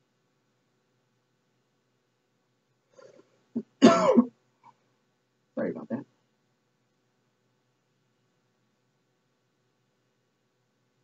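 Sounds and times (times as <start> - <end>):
person coughing: 3.6 - 4.3.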